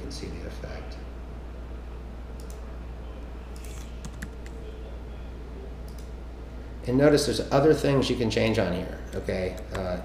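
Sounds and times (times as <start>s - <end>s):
keyboard typing: 3.5s - 4.6s.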